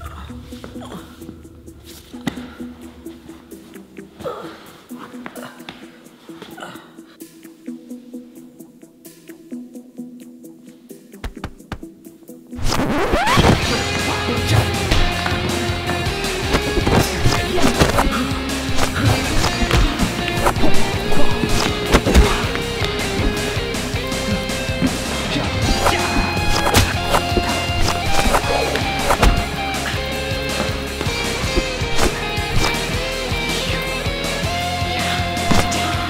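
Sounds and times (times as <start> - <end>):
music with sharp hits: 12.6 - 36.0.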